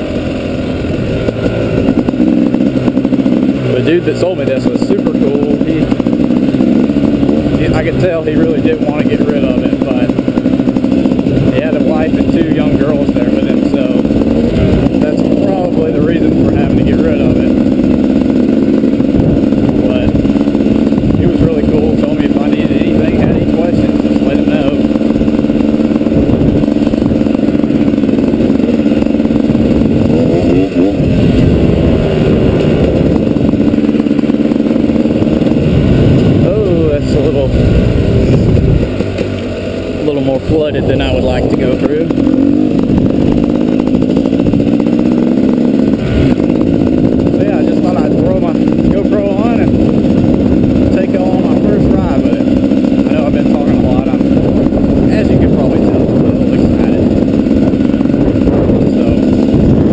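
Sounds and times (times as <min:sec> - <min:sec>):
two-stroke motorbike engine revving: 0:00.0 - 0:59.9.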